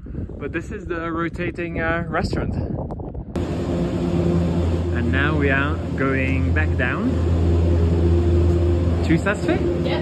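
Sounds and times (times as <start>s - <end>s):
constant machine hum: 0.6s - 10.0s
gondola machinery low drone: 3.0s - 10.0s.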